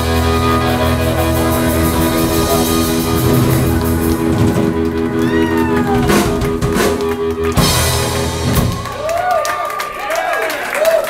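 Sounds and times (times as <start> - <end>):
high note sliding down: 0.0 - 8.4
rock band sustained chord: 0.0 - 9.1.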